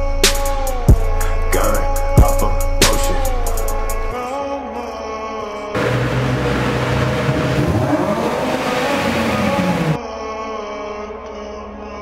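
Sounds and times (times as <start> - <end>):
background music: 0.0 - 12.0
car engine driving by: 5.8 - 10.0
road noise: 5.8 - 10.0.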